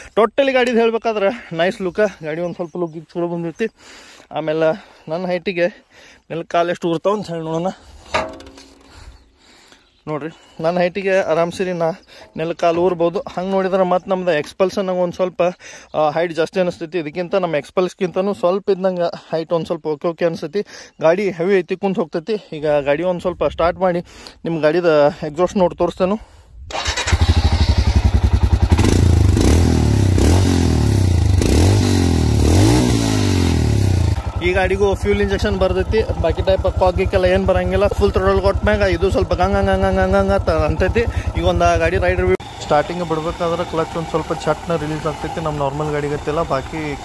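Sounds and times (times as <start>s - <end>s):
sharp ringing knock: 8.2s - 8.8s
motorcycle engine revving: 26.7s - 47.0s.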